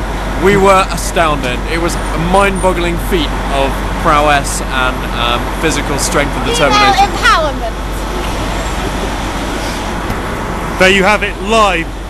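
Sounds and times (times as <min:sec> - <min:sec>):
coach engine idling: 0:00.0 - 0:12.0
street traffic: 0:00.0 - 0:12.0.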